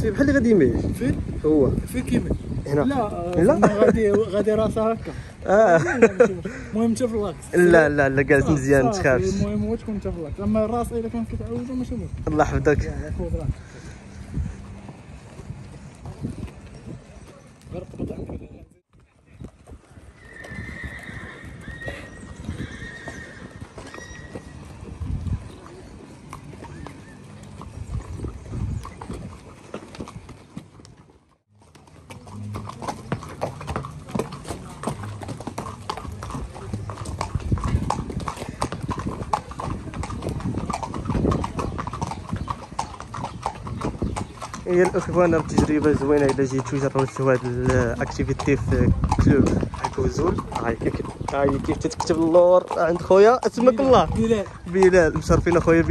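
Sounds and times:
horse hooves clip-clopping: 0:00.0 - 0:55.9.

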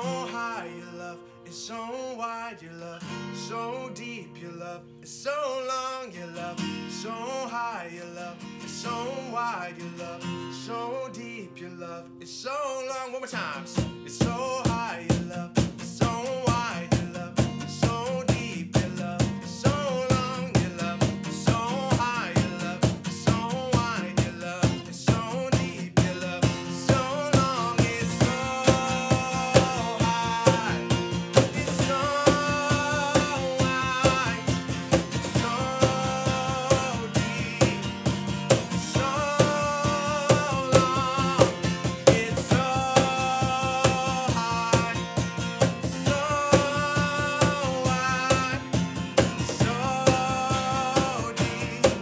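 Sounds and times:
man singing: 0:00.0 - 0:52.0
strummed acoustic guitar: 0:00.0 - 0:52.0
steady percussion beat: 0:25.6 - 0:52.0.

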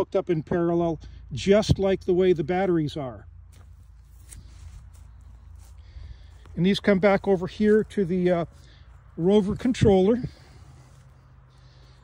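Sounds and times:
low steady rumble: 0:00.0 - 0:12.0
faint rustles: 0:03.4 - 0:12.0.

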